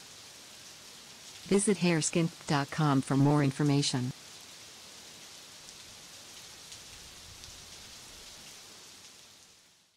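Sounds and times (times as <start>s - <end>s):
steady rain-like hiss: 0.0s - 9.9s.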